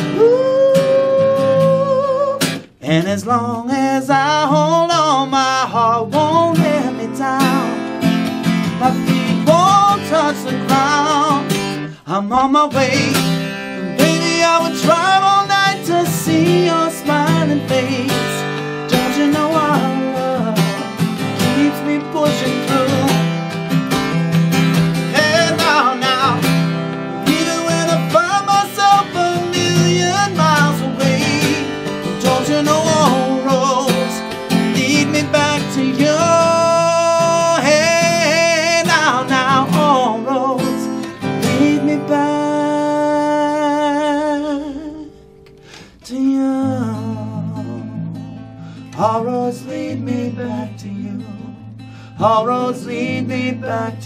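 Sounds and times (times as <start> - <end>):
man singing: 0.0 - 23.4, 25.0 - 45.2, 45.8 - 48.2, 48.9 - 54.0
acoustic guitar strumming: 0.0 - 54.0.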